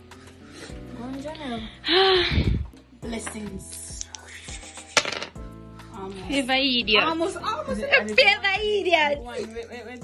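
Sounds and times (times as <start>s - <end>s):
dice clattering on wooden board: 5.0s - 5.4s.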